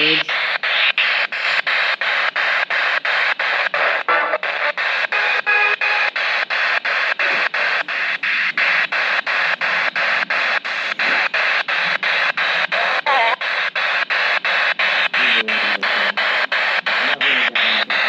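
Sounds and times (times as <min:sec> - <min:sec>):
chopped radio static hiss: 0:00.0 - 0:18.0
snatches of broadcast tone: 0:00.0 - 0:18.0.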